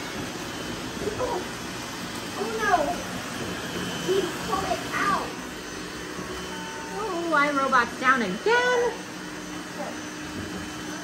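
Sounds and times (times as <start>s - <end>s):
robot vacuum cleaners humming: 0.0s - 11.0s.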